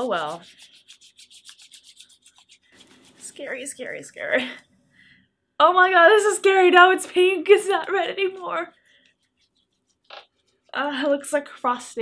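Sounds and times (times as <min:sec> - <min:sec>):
palms rubbing together: 0:00.0 - 0:04.0, 0:07.0 - 0:12.0.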